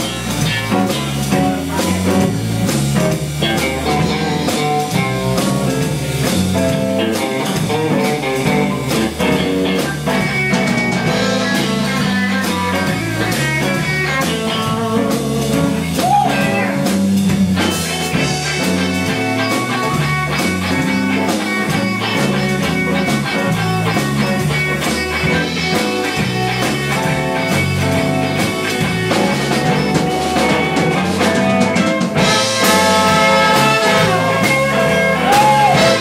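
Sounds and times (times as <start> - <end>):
electric guitar: 0.0 - 36.0
live blues band: 0.0 - 36.0.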